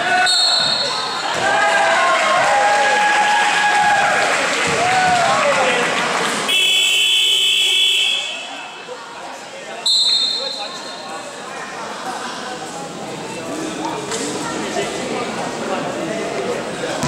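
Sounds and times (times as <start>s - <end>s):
crowd voices: 0.0s - 17.0s
shrill referee's whistle: 0.2s - 1.0s, 9.9s - 10.8s
sneakers squeaking on gym floor: 0.4s - 1.2s.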